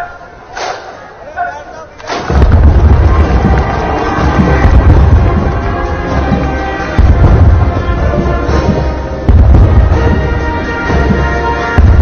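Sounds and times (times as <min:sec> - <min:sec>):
artillery gun firing: 0:02.1 - 0:03.6
loud low rumble: 0:02.3 - 0:10.4.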